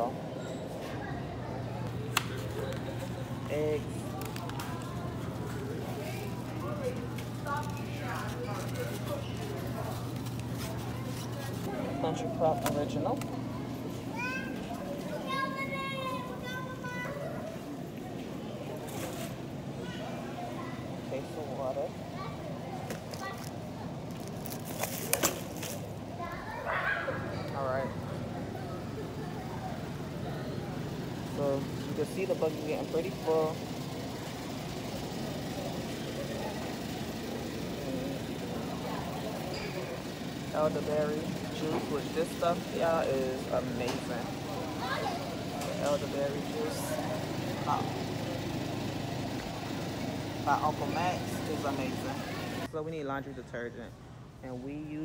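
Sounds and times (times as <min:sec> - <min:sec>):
low supermarket background hum: 0:00.0 - 0:55.0
shopping cart rolling: 0:18.8 - 0:19.4, 0:23.0 - 0:26.0.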